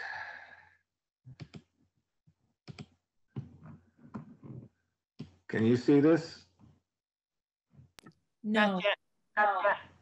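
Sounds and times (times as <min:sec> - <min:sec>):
person exhaling: 0:00.0 - 0:00.8.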